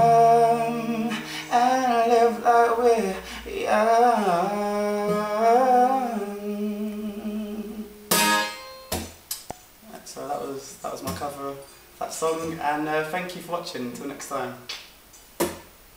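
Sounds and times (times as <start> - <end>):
man singing: 0.0 - 8.0
strummed acoustic guitar: 0.0 - 9.2.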